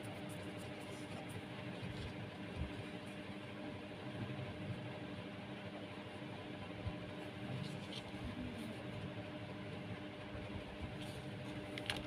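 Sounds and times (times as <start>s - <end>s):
room tone hum and hiss: 0.0s - 12.0s.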